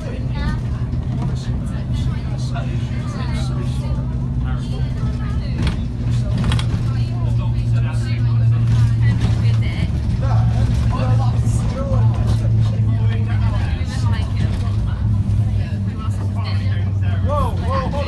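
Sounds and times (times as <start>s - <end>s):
bus engine and road noise: 0.0s - 18.0s
passengers talking: 0.0s - 18.0s.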